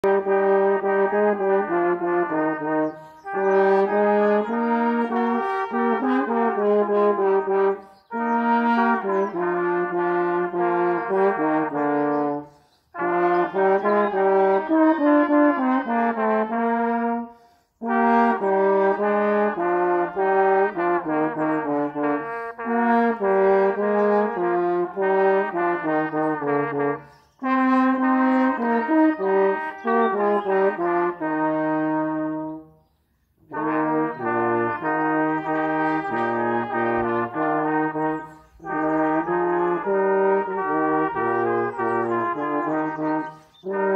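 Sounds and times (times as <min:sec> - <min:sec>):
brass ensemble playing: 0:00.0 - 0:32.8, 0:33.4 - 0:43.9.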